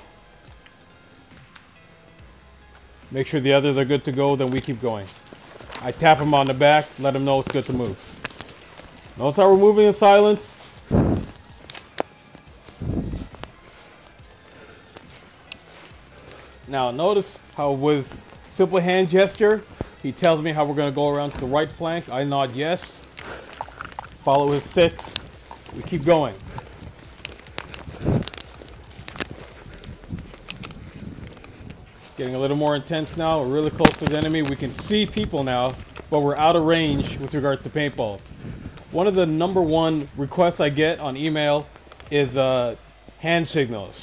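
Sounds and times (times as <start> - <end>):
twig snaps and crackles: 0.0 - 0.8, 1.4 - 1.7, 4.0 - 14.2, 14.8 - 40.2, 41.3 - 42.5
footsteps through dry leaves: 3.1 - 44.0.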